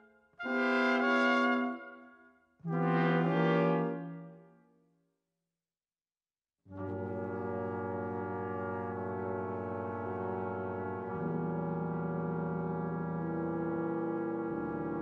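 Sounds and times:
brass quintet playing chords: 0:00.4 - 0:01.8, 0:02.7 - 0:04.0, 0:06.8 - 0:15.0.

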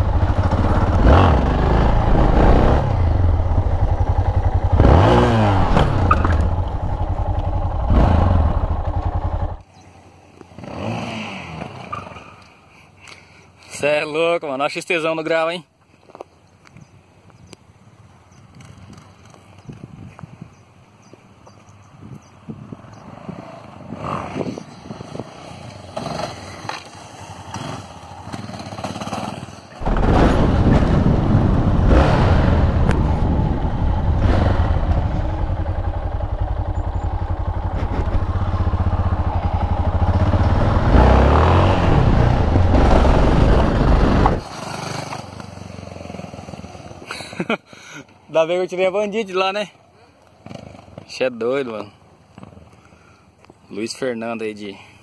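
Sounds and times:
motorcycle engine revving: 0:00.0 - 0:09.6, 0:10.5 - 0:12.4, 0:22.9 - 0:47.1
wind: 0:00.0 - 0:55.0.

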